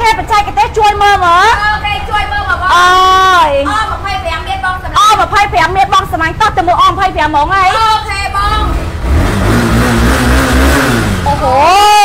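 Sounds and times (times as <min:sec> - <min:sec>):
motorcycle engine revving: 0:08.4 - 0:12.0.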